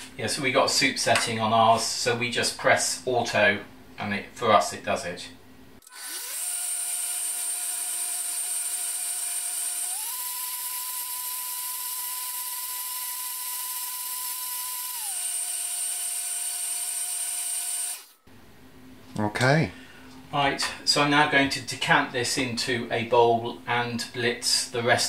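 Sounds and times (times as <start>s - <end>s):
blender motor whine: 5.8s - 18.2s.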